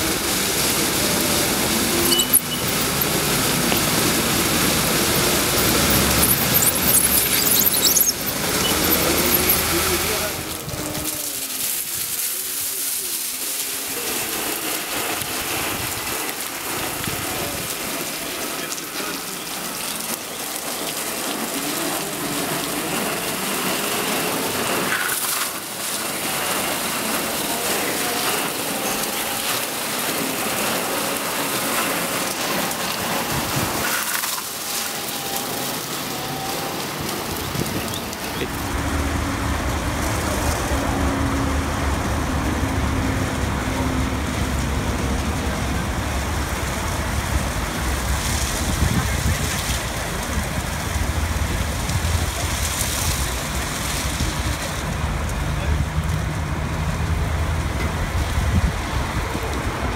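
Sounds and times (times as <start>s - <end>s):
water spraying and splashing: 0.0s - 59.9s.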